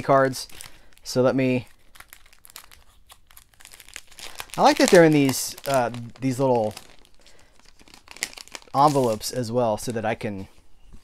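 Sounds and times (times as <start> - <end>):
paper rustling and crinkling: 1.6 - 9.4.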